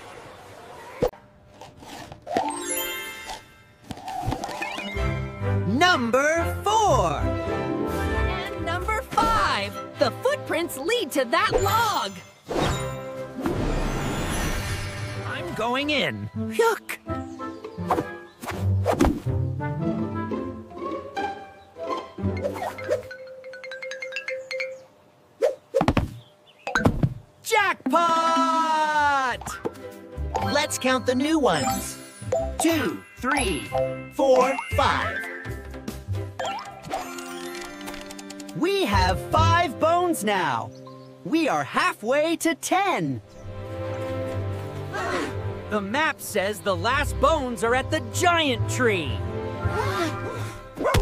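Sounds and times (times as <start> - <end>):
cartoon background music: 2.3 - 24.9, 27.8 - 43.0, 44.9 - 51.0.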